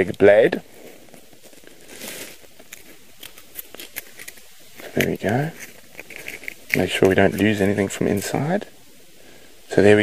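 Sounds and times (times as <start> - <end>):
soft rustle of cocoon: 0.0 - 10.0.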